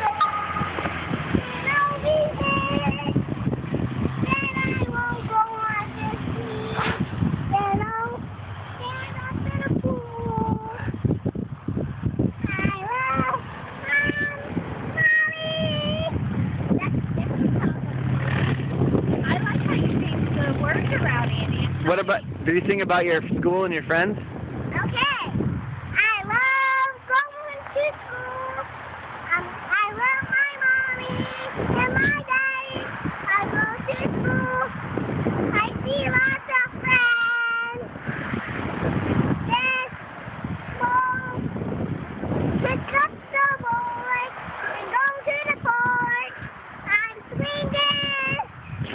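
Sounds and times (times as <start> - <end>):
girl singing in a high voice: 0.0 - 11.1, 12.3 - 17.9, 24.7 - 34.8, 35.4 - 37.9, 39.4 - 40.0, 40.7 - 41.7, 42.4 - 48.6
rushing noise: 37.8 - 43.4.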